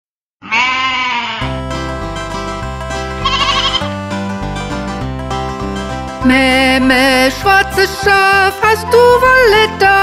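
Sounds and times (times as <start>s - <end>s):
sheep bleating: 0.4s - 1.6s, 3.2s - 3.9s
upbeat nursery rhyme instrumental: 1.4s - 10.0s.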